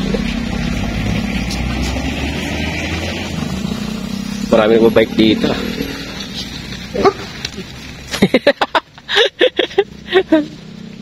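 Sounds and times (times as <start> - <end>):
dog barking: 6.9 - 7.4.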